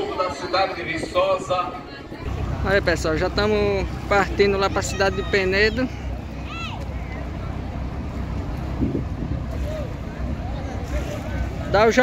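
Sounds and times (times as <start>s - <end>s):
boat engine idling: 0.2s - 12.0s.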